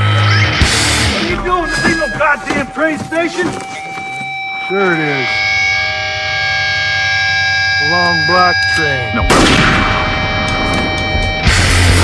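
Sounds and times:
person speaking: 0:01.2 - 0:05.4
sustained siren-like chord: 0:01.2 - 0:11.8.

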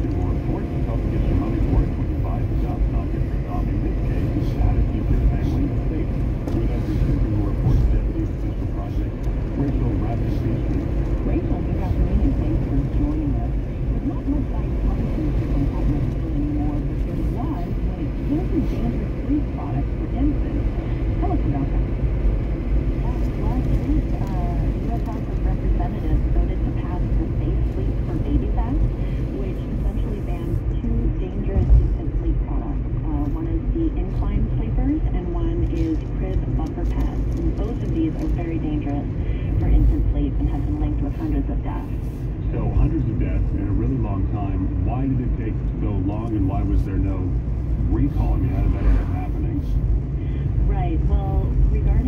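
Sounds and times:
car road and engine rumble: 0:00.0 - 0:52.0
muffled talk from car radio: 0:00.0 - 0:52.0.

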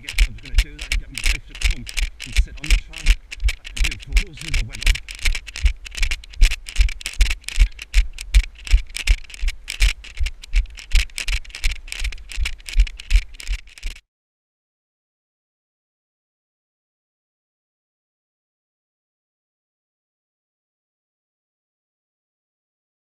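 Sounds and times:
running footfall thumps with rattle: 0:00.0 - 0:14.0.

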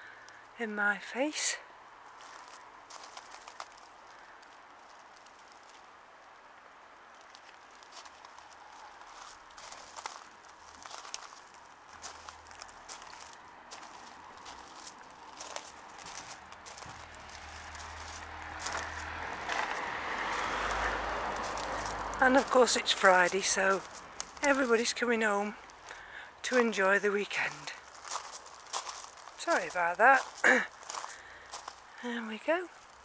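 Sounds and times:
road traffic rumble: 0:00.0 - 0:33.0
footsteps on gravel: 0:02.2 - 0:05.9, 0:07.2 - 0:33.0.

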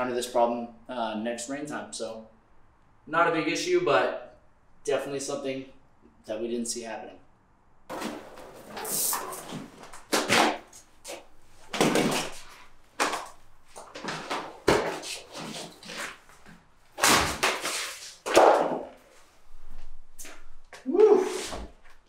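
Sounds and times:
vinyl flooring tearing: 0:07.9 - 0:18.8.

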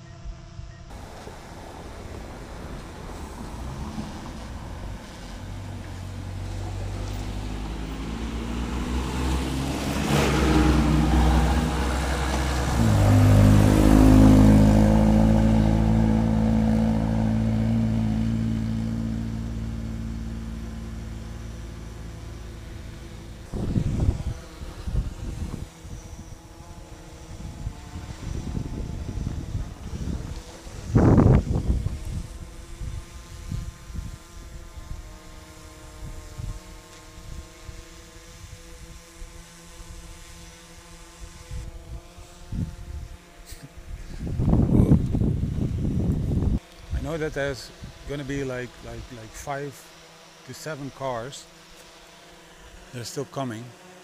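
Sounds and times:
cars driving past: 0:00.9 - 0:32.8.

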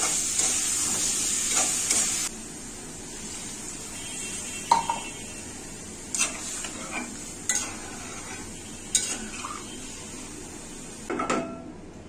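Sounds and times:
curry sizzling: 0:00.0 - 0:11.1
spatula scraping metal pan: 0:06.1 - 0:09.8.

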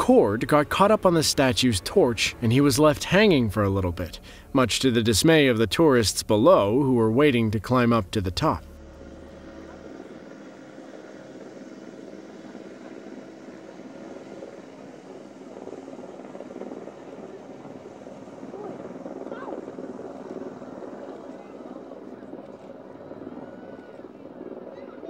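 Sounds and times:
helicopter drone: 0:00.0 - 0:25.0
faint voices: 0:15.6 - 0:25.0.

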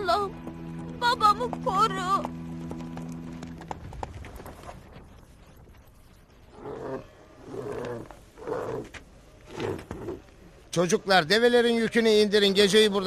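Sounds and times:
camel groaning: 0:06.5 - 0:10.2.

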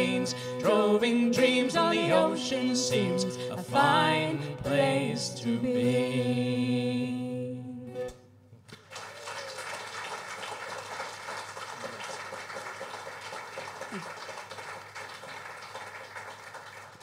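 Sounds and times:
audience applauding: 0:08.7 - 0:17.0.

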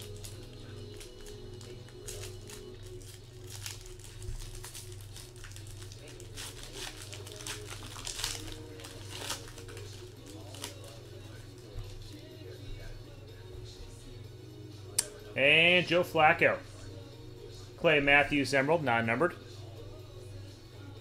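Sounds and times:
foil wrapper crinkling and tearing: 0:00.0 - 0:12.0.

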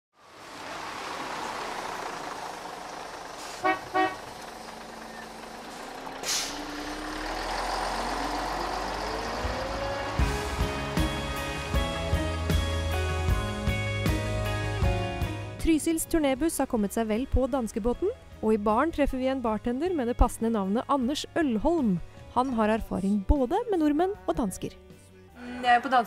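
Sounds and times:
traffic noise: 0:00.1 - 0:13.8
bus engine: 0:00.1 - 0:22.8
bus horn toots: 0:03.4 - 0:04.8
brief hiss: 0:06.2 - 0:06.6
plucked guitar music: 0:09.2 - 0:20.0.

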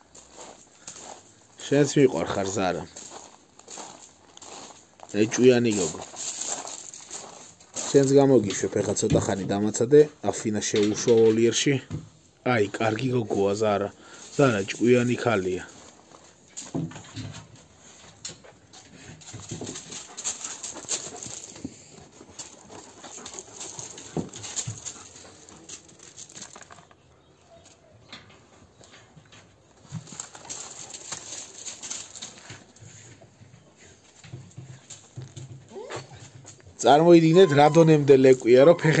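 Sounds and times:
dogs sniffing: 0:17.8 - 0:26.6
light knocks and scuffs: 0:29.0 - 0:36.8.

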